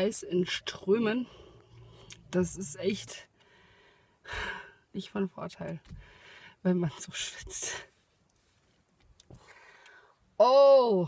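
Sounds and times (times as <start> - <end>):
soft breath: 3.4 - 4.8, 5.9 - 6.6.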